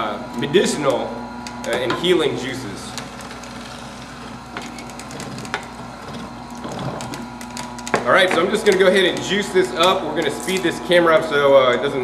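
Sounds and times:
juicer motor hum: 0.0 - 12.0
ginger crunching in juicer: 0.2 - 11.8.

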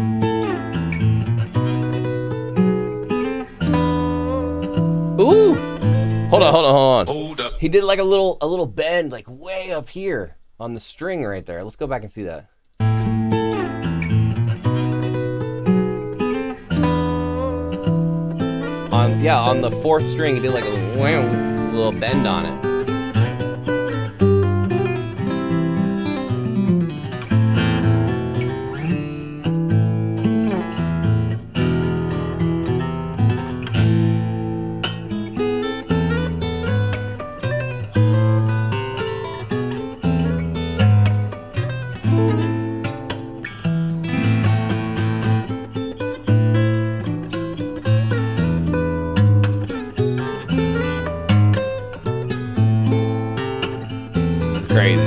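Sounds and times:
fingerstyle acoustic guitar: 0.0 - 9.7, 12.8 - 55.0.

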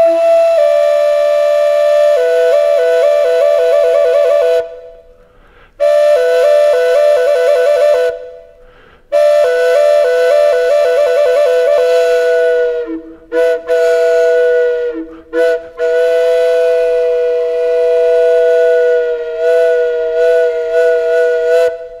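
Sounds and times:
flute long notes: 0.0 - 22.0.

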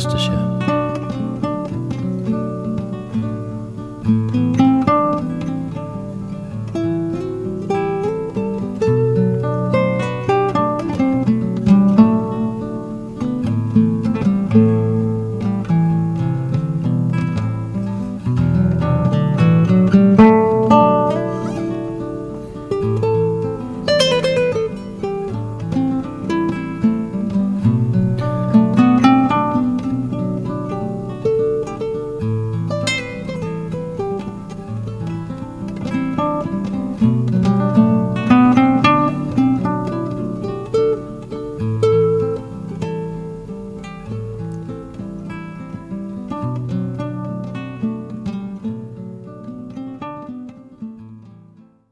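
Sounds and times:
classical guitar plucked notes: 0.0 - 51.9.

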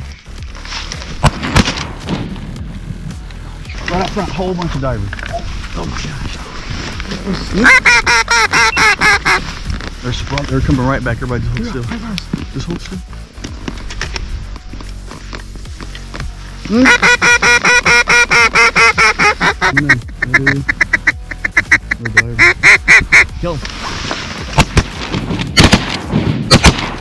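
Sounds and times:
duck call quacks: 7.6 - 9.5, 16.7 - 23.3
shotgun blasts: 24.6 - 27.0.

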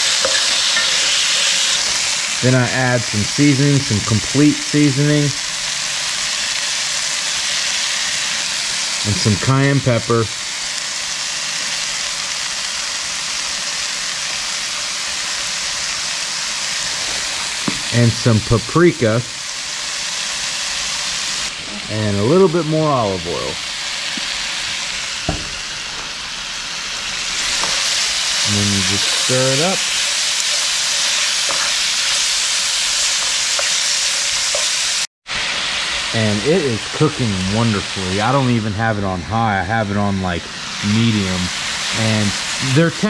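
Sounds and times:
spoon stirring in pan: 0.0 - 2.1, 27.4 - 34.9
steak sizzling in oil: 0.0 - 43.0.

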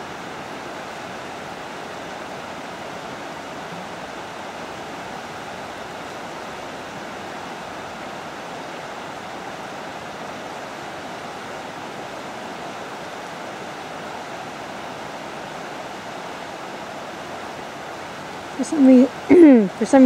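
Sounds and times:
river water rushing: 0.0 - 20.0.

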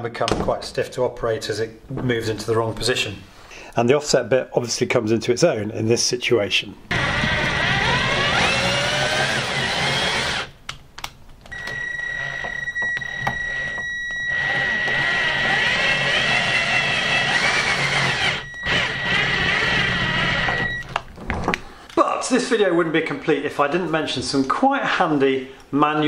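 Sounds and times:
cordless drill motor whine: 6.9 - 10.5, 11.5 - 20.9.

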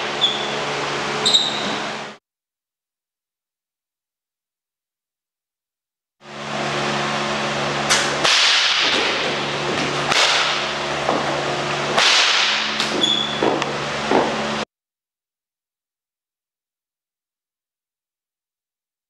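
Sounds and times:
steady low hum: 6.2 - 14.6
sharp smacks: 7.9 - 9.3, 10.1 - 10.7, 12.0 - 13.0.

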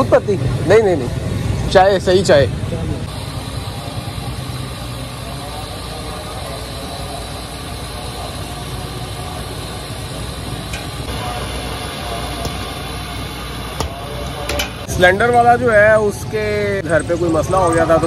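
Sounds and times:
steady low rumble: 0.5 - 16.8.

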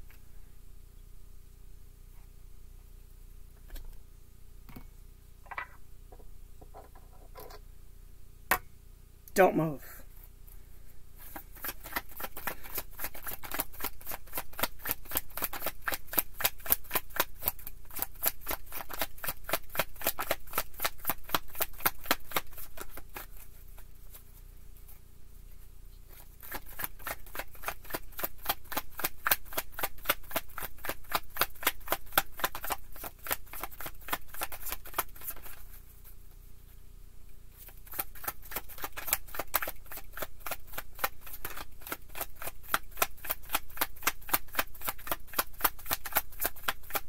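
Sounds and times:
cards being shuffled: 11.2 - 24.4, 26.1 - 35.9, 37.6 - 47.0.

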